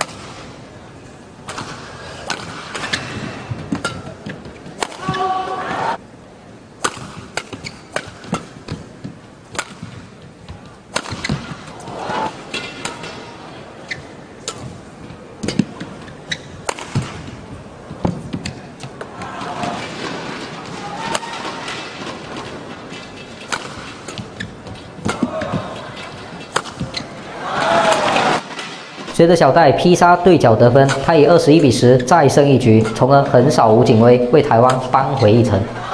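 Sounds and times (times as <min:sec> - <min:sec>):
arena background noise: 0:00.0 - 0:35.9
rackets smacking shuttlecock: 0:01.4 - 0:05.4, 0:06.8 - 0:13.3, 0:13.9 - 0:27.2, 0:30.8 - 0:33.8.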